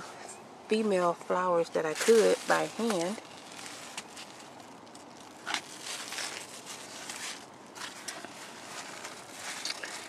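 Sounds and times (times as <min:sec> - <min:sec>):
leaves rustling: 0:00.8 - 0:10.0.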